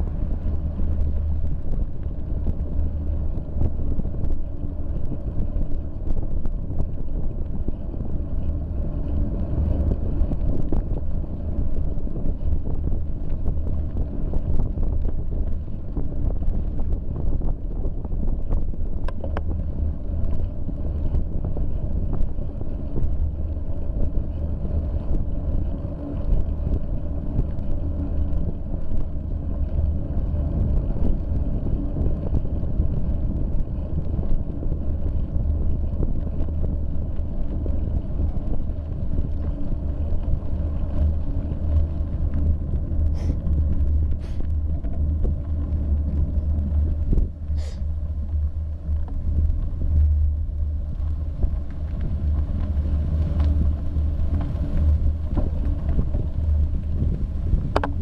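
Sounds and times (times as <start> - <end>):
tyre noise on road: 0.0 - 58.0
wind buffeting microphone: 0.0 - 58.0.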